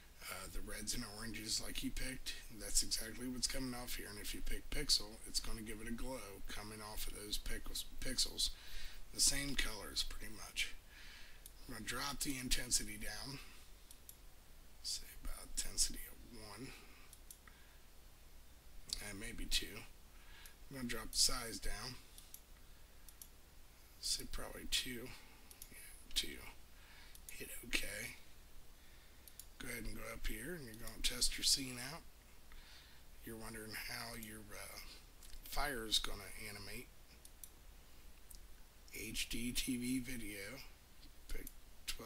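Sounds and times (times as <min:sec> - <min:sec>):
low steady hum: 0:00.0 - 0:42.0
computer mouse clicks: 0:22.1 - 0:23.4, 0:25.5 - 0:25.8, 0:29.2 - 0:29.6, 0:37.1 - 0:37.6.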